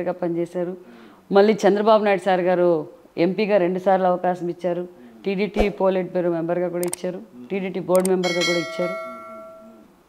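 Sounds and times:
notification bell ding: 8.2 - 9.9.

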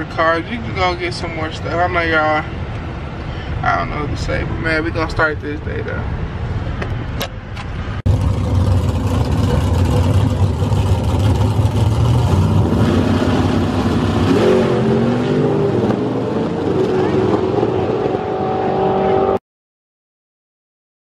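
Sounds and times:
road noise inside car: 0.0 - 19.4
drag racing car engine: 7.6 - 19.4.

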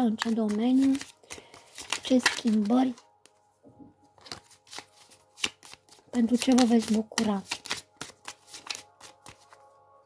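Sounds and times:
cards being shuffled: 0.0 - 3.0, 4.2 - 9.6.

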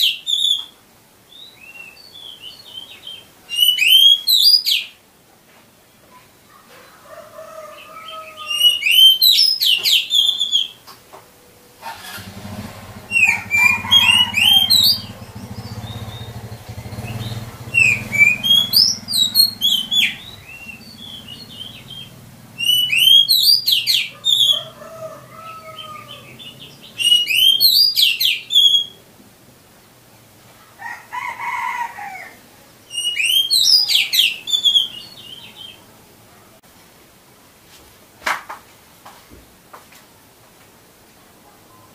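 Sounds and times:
bird singing whistled phrases: 3.5 - 4.9, 8.5 - 10.8, 13.1 - 24.6, 26.9 - 29.0, 32.9 - 35.6.

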